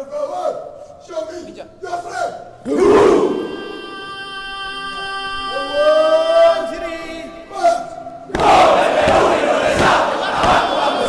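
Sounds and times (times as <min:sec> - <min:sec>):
men shouting a chant: 0:02.6 - 0:06.9, 0:08.4 - 0:11.0.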